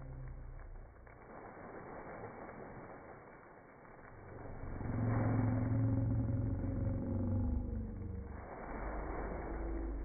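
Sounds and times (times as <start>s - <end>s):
slowed-down voice drawn-out hum: 0.0s - 0.9s, 4.2s - 10.0s.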